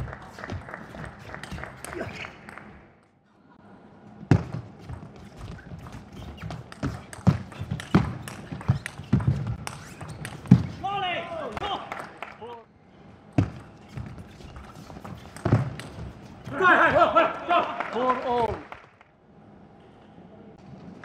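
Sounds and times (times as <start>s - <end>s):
player shouting: 16.5s - 17.8s.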